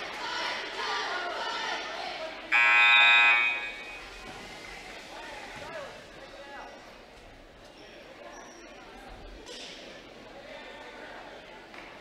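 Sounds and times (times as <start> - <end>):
crowd chatter: 0.0 - 12.0
scoreboard horn: 2.6 - 4.0.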